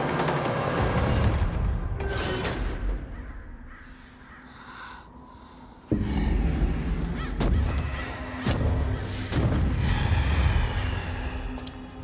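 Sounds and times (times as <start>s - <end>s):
film soundtrack: 0.0s - 12.0s
crows cawing: 3.0s - 9.3s.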